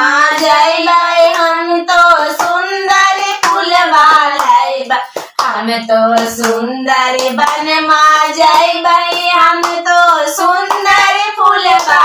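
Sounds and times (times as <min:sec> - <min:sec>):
women singing devotional song: 0:00.0 - 0:12.0
hand clapping: 0:00.2 - 0:05.6, 0:06.2 - 0:12.0.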